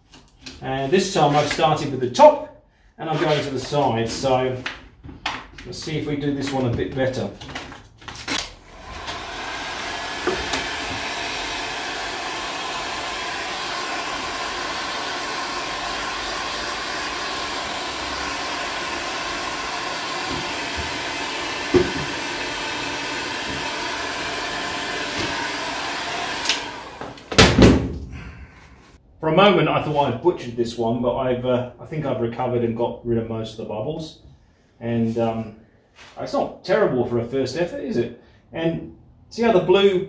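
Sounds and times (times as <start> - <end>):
heat gun blowing: 8.3 - 27.6.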